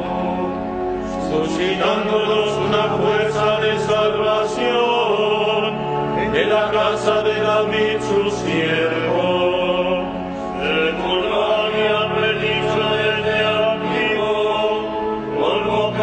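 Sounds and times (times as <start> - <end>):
chant in long held notes: 0.0 - 16.0
musical accompaniment: 0.0 - 16.0.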